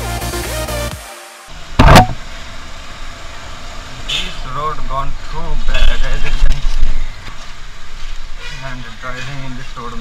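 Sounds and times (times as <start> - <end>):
motorcycle engine: 1.5 - 4.2
road noise: 1.5 - 10.0.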